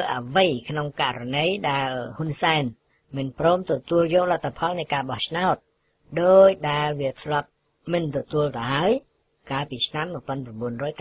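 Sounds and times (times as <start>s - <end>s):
radio news voice reading: 0.0s - 11.0s.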